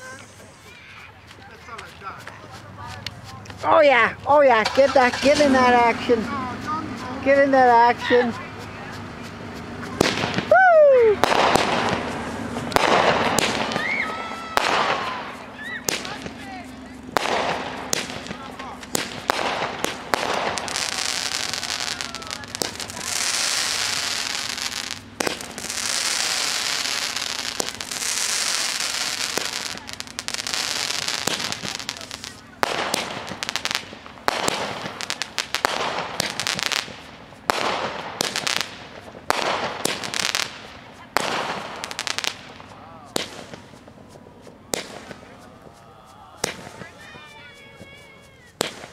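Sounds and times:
whistling fireworks: 0.0 - 1.4, 4.7 - 48.9
firework crackles: 0.0 - 48.9
firework fountain hissing: 0.0 - 48.9
fireworks bangs and pops: 0.0 - 48.9.

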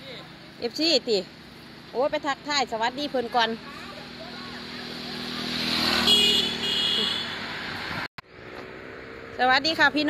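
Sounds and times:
vehicle passing by: 0.0 - 10.0.

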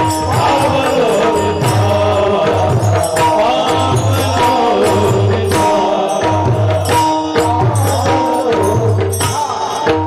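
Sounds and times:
hand drum: 0.0 - 10.0.

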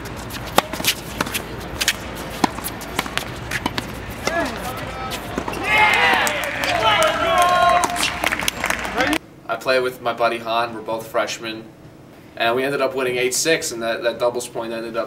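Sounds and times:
quick footsteps on court: 0.0 - 9.2
racket striking ball: 0.3 - 8.5
players shouting: 3.7 - 9.2.

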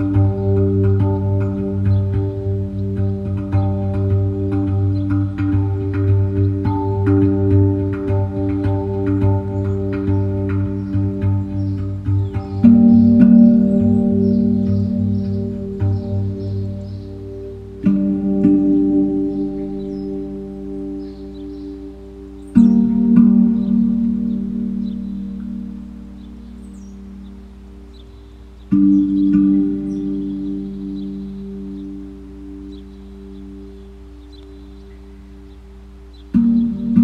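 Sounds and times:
faint bird chirps: 0.0 - 37.0
low steady drone: 0.0 - 37.0
steel hand drum ringing notes: 0.0 - 37.0.

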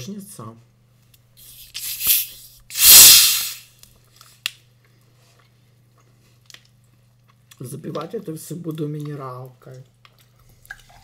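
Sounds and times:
gas hissing from bottle: 1.4 - 3.7.

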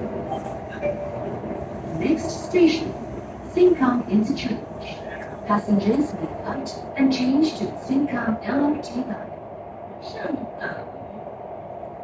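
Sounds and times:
metro train rumbling in tunnel: 0.0 - 12.0.

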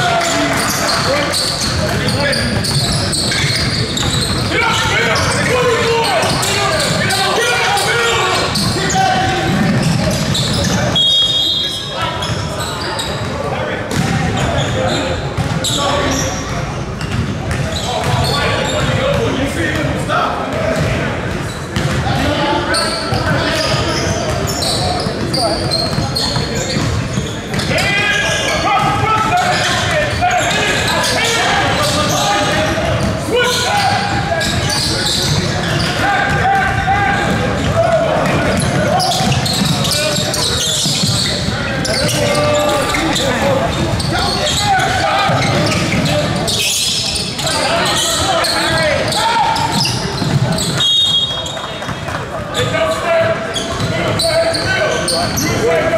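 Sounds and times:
voices calling out: 0.0 - 55.9
basketball bouncing on court: 0.1 - 7.1, 8.5 - 11.4, 12.2 - 15.8, 16.5 - 19.9, 20.5 - 22.2, 23.1 - 30.8, 31.6 - 33.3, 33.9 - 46.5, 48.7 - 55.9.

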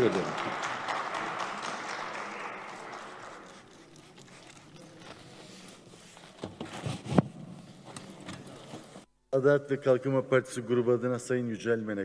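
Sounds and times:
applause in a hall: 0.0 - 3.5.

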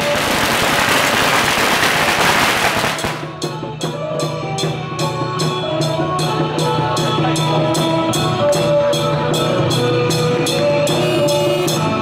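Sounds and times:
firecrackers crackling: 0.0 - 3.4
drum and cymbal beat: 0.0 - 12.0.

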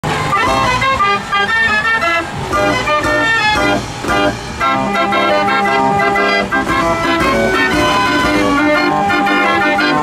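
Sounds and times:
fairground organ playing: 0.0 - 10.0.

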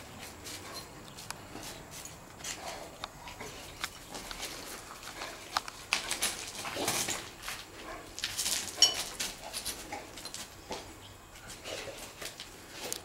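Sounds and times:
paws scuffing on rubble: 0.1 - 13.0.

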